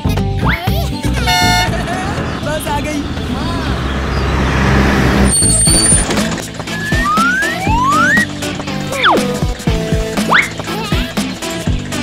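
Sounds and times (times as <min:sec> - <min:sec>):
bus engine running: 0:00.0 - 0:12.0.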